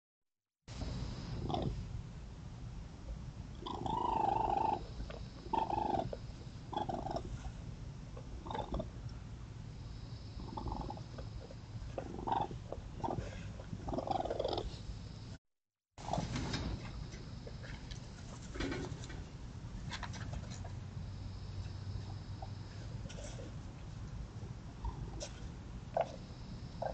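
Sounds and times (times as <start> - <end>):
raccoons churring: 1.4 - 1.8, 3.6 - 7.5, 8.1 - 9.1, 10.2 - 14.8, 24.7 - 26.9
raccoon short low calls: 3.6 - 7.3.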